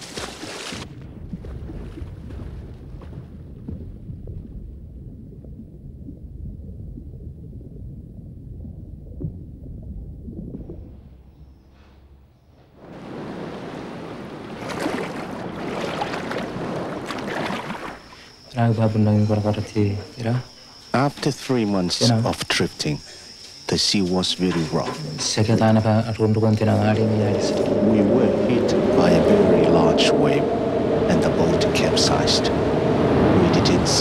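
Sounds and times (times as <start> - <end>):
water splashing around boat: 0.0 - 5.5, 12.8 - 18.4
muffled underwater rumble: 0.9 - 12.4, 24.5 - 34.0.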